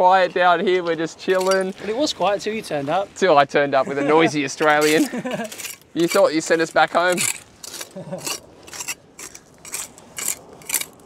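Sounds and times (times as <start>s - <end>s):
trowel scraping sand and pebbles: 4.6s - 11.0s.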